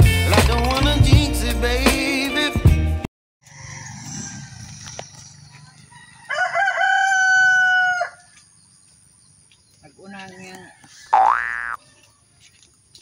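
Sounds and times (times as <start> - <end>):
rooster crowing: 3.4 - 8.5, 10.2 - 12.3
faint outdoor background: 3.4 - 13.0.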